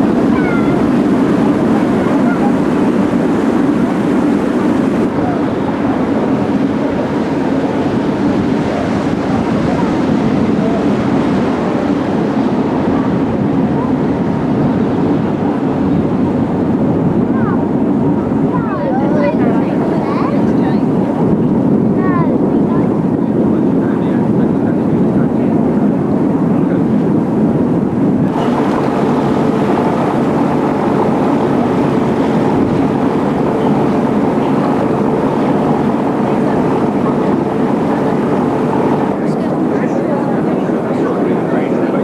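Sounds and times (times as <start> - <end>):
ship diesel engines droning: 0.0 - 42.0
water rushing past hull: 0.0 - 42.0
wind on microphone: 0.0 - 42.0.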